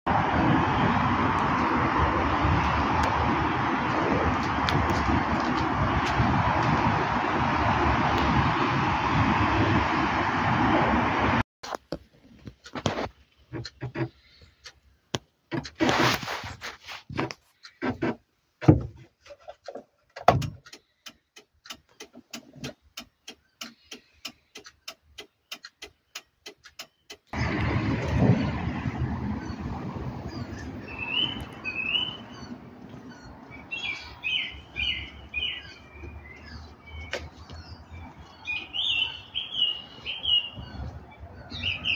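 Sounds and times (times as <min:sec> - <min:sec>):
outdoor rushing noise: 0:00.1 - 0:11.4, 0:27.3 - 0:41.9
sharp evenly spaced ticks: 0:20.6 - 0:27.4
small birds chirping: 0:20.6 - 0:27.4, 0:29.4 - 0:41.9.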